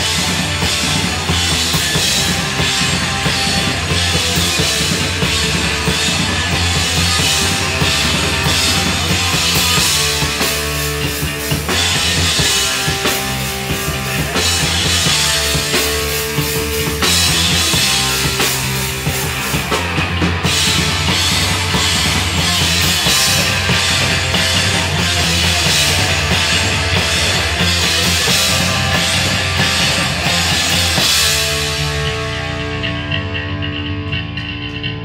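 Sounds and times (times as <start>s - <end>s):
bass guitar: 0.0s - 35.0s
distorted electric guitars: 0.0s - 35.0s
drum kit: 0.0s - 35.0s.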